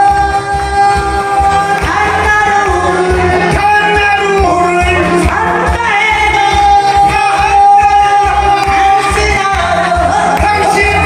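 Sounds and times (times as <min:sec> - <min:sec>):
backing band with steady beat: 0:00.0 - 0:11.0
person singing: 0:00.0 - 0:11.0.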